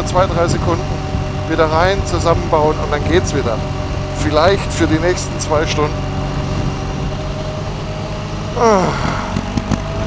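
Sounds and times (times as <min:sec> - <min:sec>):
motorcycle engine running: 0:00.0 - 0:10.0
rush of riding wind: 0:00.0 - 0:10.0.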